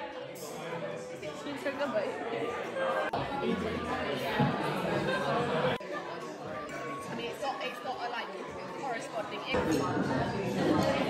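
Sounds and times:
chatter of several voices: 0:00.0 - 0:11.0.

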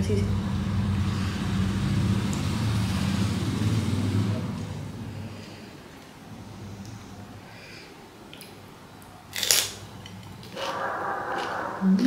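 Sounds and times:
motor vehicle engine rumble: 0:00.0 - 0:07.6.

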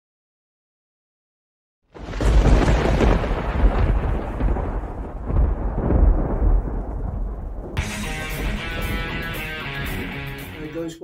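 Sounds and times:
thunder crack: 0:01.9 - 0:10.7
deep thunder rumble: 0:02.0 - 0:10.5.

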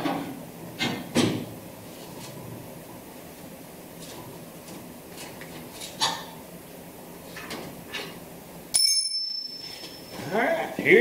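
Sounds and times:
bright bell ding: 0:08.7 - 0:10.2.

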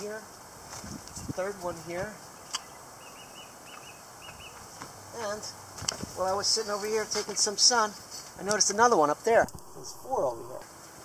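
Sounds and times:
faint outdoor hiss: 0:00.0 - 0:11.0
small bird chirping: 0:02.4 - 0:04.7.

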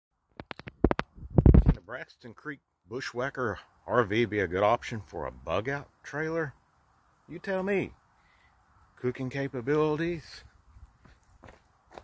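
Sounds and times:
person speaking: 0:07.2 - 0:08.0, 0:08.9 - 0:10.6.

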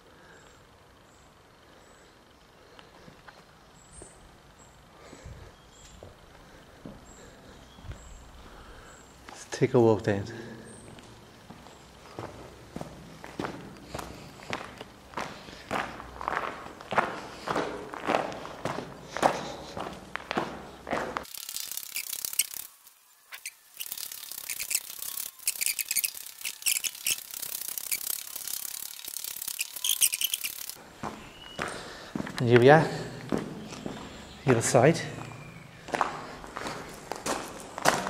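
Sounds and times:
echoing footsteps in tunnel: 0:05.0 - 0:09.5, 0:10.2 - 0:21.3, 0:30.8 - 0:38.0
scattered clicks: 0:23.4 - 0:30.8.

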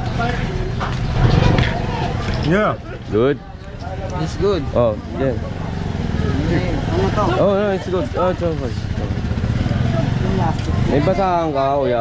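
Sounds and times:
faint voices: 0:00.0 - 0:12.0
small engine rumbling: 0:00.0 - 0:12.0.

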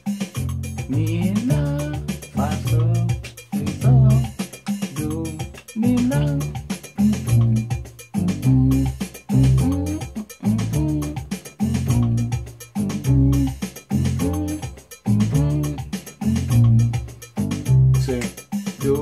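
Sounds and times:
drum and percussion rhythm: 0:00.0 - 0:19.0
keyboard bass line: 0:00.0 - 0:19.0.

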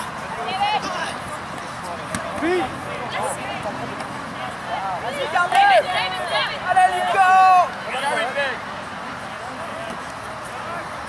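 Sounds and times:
background babble: 0:00.0 - 0:11.0
people shouting: 0:04.4 - 0:08.6.

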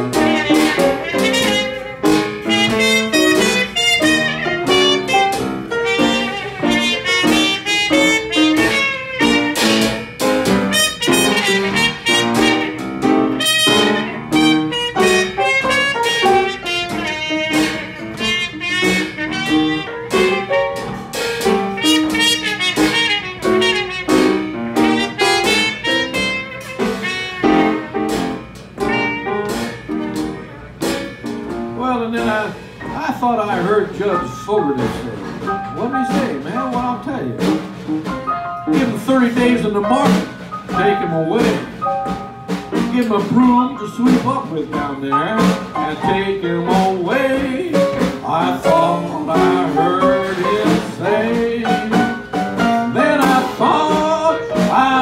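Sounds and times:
trumpet leading: 0:00.0 - 0:32.5, 0:33.3 - 0:55.0
drum kit played with sticks: 0:00.0 - 0:55.0
upright piano: 0:00.0 - 0:55.0.

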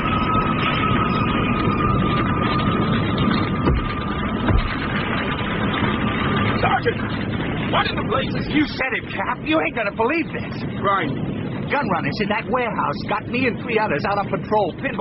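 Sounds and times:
emergency siren steady high tone: 0:00.0 - 0:08.2
rumbling fire noise: 0:00.0 - 0:15.0.

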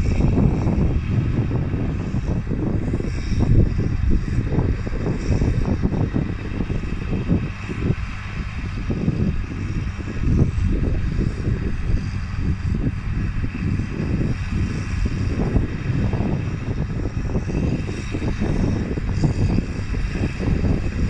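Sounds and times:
distant tractor engine drone: 0:00.0 - 0:21.0
wind buffeting microphone: 0:00.0 - 0:21.0.

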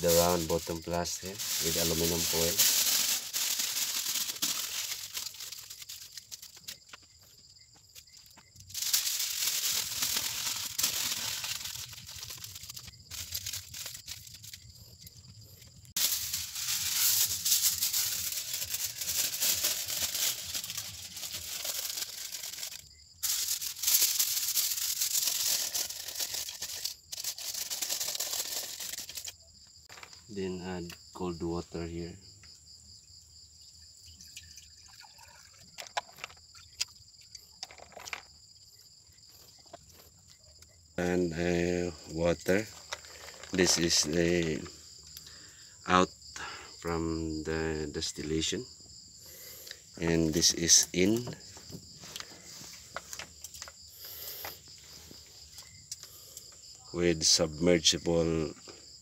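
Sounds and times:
person speaking: 0:00.0 - 0:03.4, 0:41.0 - 0:42.8, 0:43.4 - 0:44.8, 0:50.0 - 0:51.4
aluminium foil crinkling: 0:00.0 - 0:07.2, 0:07.9 - 0:30.0, 0:34.9 - 0:45.4, 0:49.2 - 0:56.6.

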